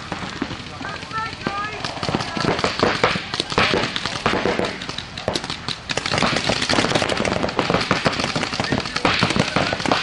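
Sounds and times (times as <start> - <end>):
paintball markers firing: 0.1 - 10.0.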